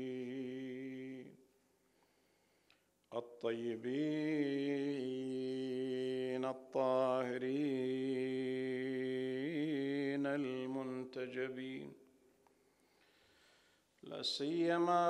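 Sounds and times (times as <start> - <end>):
man chanting: 0.0 - 1.4, 3.1 - 12.0, 14.0 - 15.0
short breaths: 1.8 - 3.0, 12.4 - 14.0.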